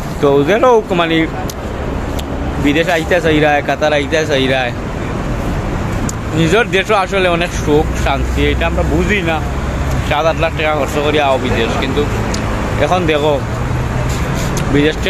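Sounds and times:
low vehicle rumble: 0.0s - 15.0s
street traffic noise: 0.0s - 15.0s
man speaking: 0.2s - 1.6s, 2.6s - 4.8s, 6.3s - 13.5s, 14.6s - 15.0s.

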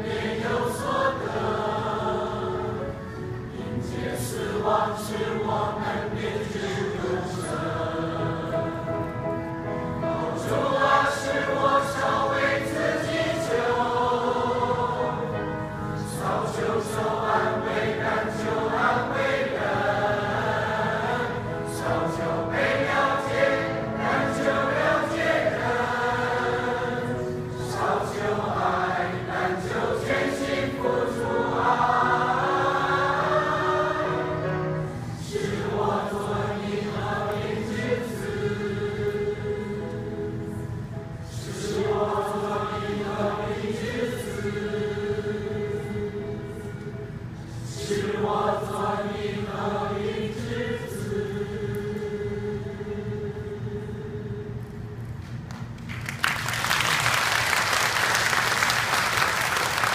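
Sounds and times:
mixed choir singing a hymn: 0.0s - 55.1s.

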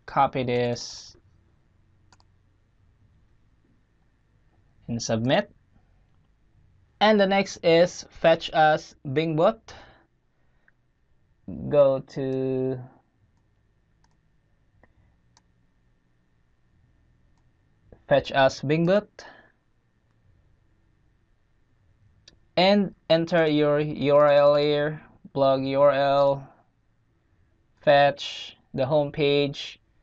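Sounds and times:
faint low room hum: 0.0s - 30.0s
computer click: 2.1s - 2.3s, 13.3s - 14.2s
computer mouse clicks: 2.1s - 2.4s, 13.3s - 15.5s.

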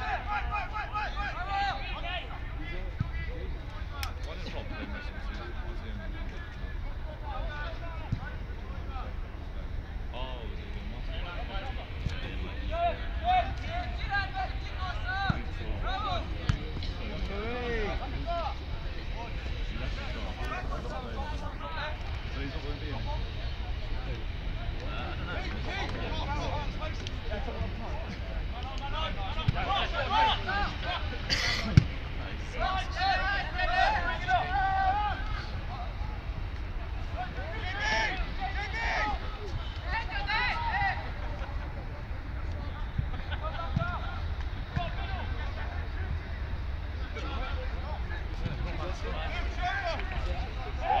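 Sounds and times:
players shouting: 0.0s - 5.6s, 11.0s - 51.0s.

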